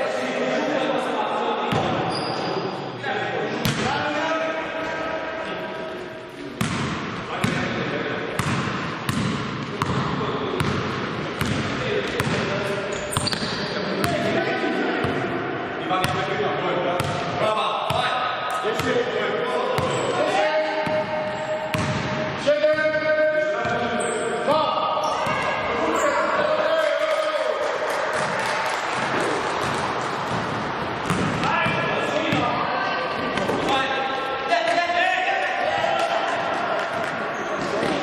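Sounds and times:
basketball bouncing on floor: 0:06.6 - 0:07.6, 0:08.4 - 0:10.0, 0:29.6 - 0:32.4.

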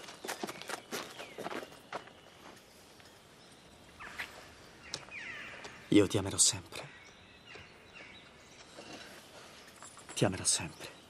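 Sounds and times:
faint bird chirps: 0:00.2 - 0:11.0.

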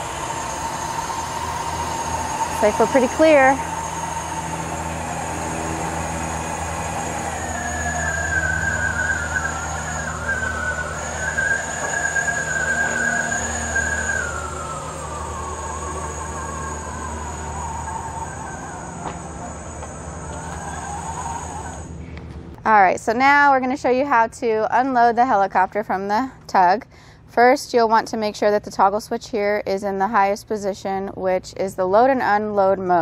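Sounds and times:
electric motor hum and whine: 0:00.0 - 0:22.7.

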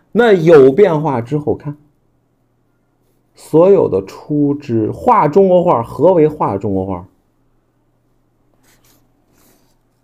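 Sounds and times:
faint low hum: 0:00.0 - 0:10.0
ink brush on paper: 0:03.0 - 0:03.3, 0:08.6 - 0:10.0.

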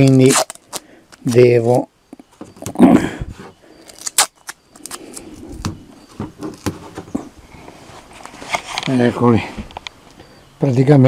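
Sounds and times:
adhesive tape ripping: 0:00.0 - 0:01.4, 0:03.9 - 0:05.2
paper crinkling: 0:00.0 - 0:01.4.

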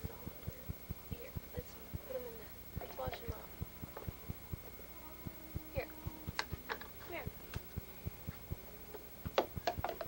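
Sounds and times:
steady low ticking: 0:00.0 - 0:10.0.

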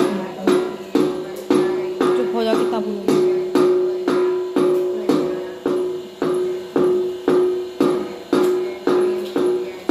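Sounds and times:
steel plate struck rhythmically: 0:00.0 - 0:09.9.

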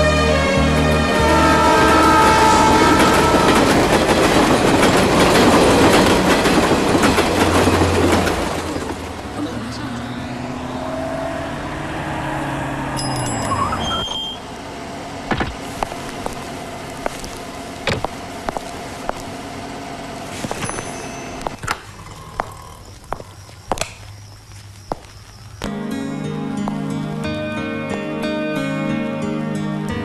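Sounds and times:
music: 0:00.0 - 0:02.2, 0:25.7 - 0:30.0
low drone falling in pitch: 0:00.0 - 0:04.2, 0:09.2 - 0:13.9
loud rumbling noise: 0:00.6 - 0:13.0.

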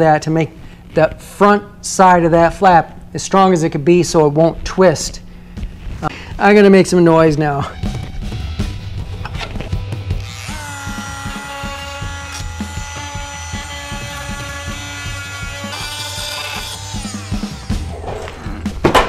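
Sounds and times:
rotary tool grinding fiberglass: 0:10.2 - 0:18.5.

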